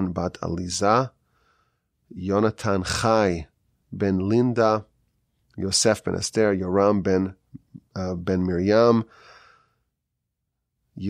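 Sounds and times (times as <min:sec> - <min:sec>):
man breathing out: 0:01.2 - 0:01.9, 0:09.1 - 0:09.9.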